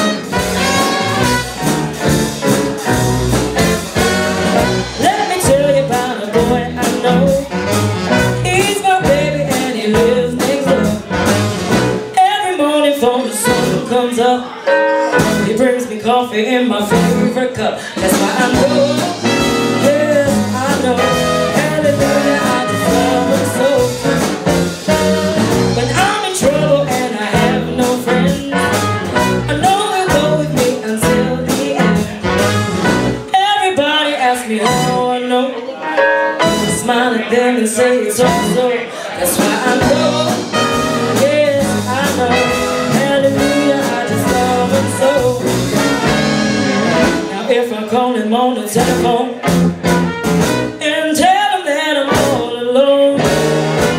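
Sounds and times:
electric bass: 0.0s - 12.2s, 15.1s - 15.7s, 16.9s - 33.3s, 36.4s - 37.0s, 38.1s - 47.4s, 48.7s - 50.8s, 53.2s - 53.9s
woman singing into a microphone: 5.0s - 7.6s, 8.4s - 11.2s, 12.1s - 24.2s, 25.7s - 32.3s, 33.2s - 45.7s, 47.0s - 49.5s, 50.7s - 53.9s
electric guitar: 16.9s - 33.4s, 53.1s - 53.9s.

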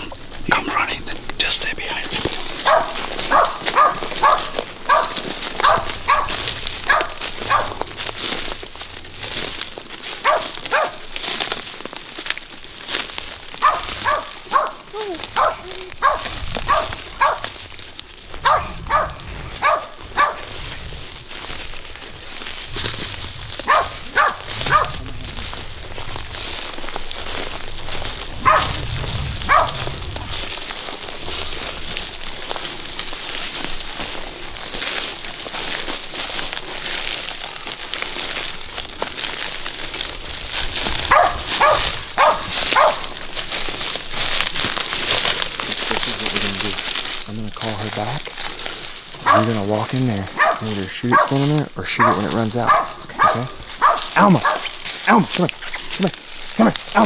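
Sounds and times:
dogs barking: 2.5s - 8.0s, 10.1s - 11.2s, 13.5s - 17.6s, 18.3s - 20.6s, 23.5s - 25.1s, 28.0s - 30.4s, 41.0s - 43.3s, 49.1s - 57.0s.

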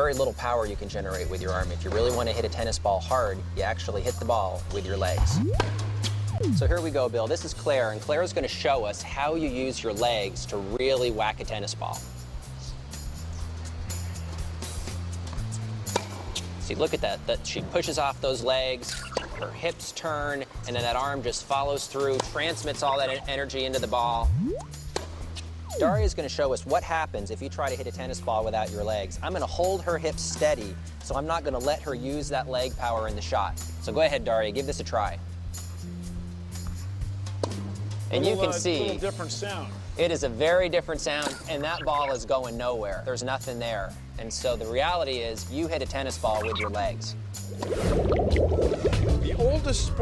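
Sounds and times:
background music with bass line: 0.0s - 8.4s, 22.5s - 26.4s, 41.3s - 50.0s
background music with low notes: 0.0s - 50.0s.

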